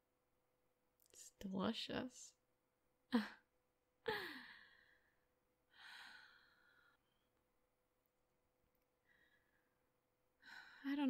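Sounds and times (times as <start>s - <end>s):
woman sighing: 3.1s - 5.1s.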